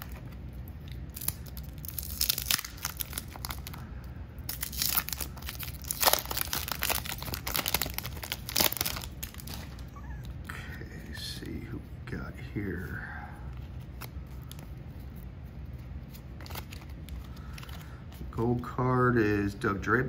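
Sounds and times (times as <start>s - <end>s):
paper wrapper crinkling and tearing: 0.0s - 10.3s, 13.6s - 18.4s.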